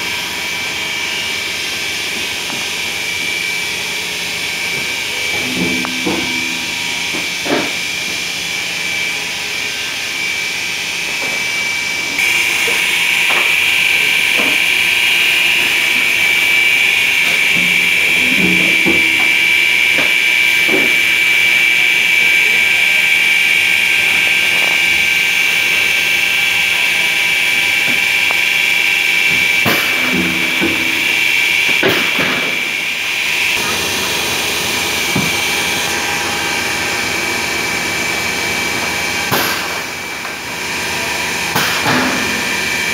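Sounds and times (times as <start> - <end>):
high-pitched machine whine: 0.0 - 42.9.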